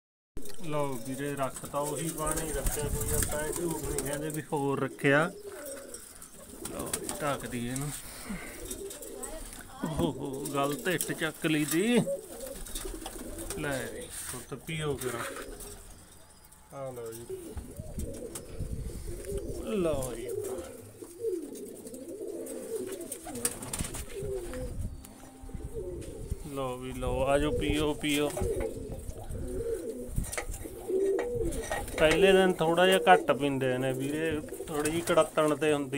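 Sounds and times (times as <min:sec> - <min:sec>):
pigeons cooing: 0:00.4 - 0:35.9.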